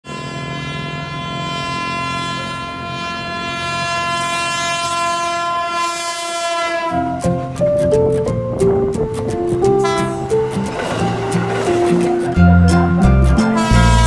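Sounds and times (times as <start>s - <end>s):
train horn blast: 0.0s - 7.2s, 9.8s - 12.0s, 13.3s - 14.0s
music with short stepped notes: 7.1s - 14.0s.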